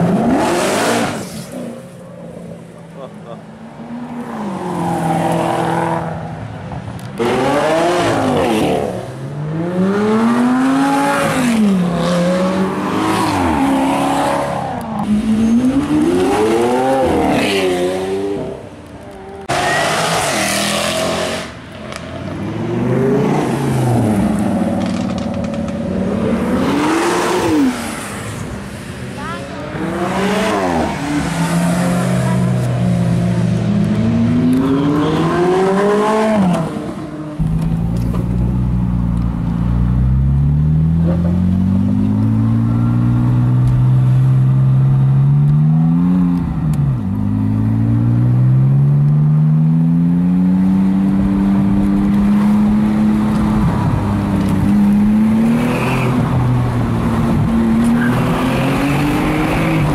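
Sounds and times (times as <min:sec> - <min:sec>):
sports cars revving past: 0:00.0 - 0:02.6, 0:03.2 - 0:39.0, 0:39.6 - 0:59.9.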